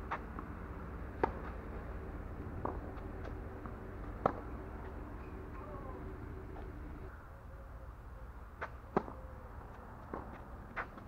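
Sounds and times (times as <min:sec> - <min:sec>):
racket striking tennis ball: 0:00.1 - 0:05.5.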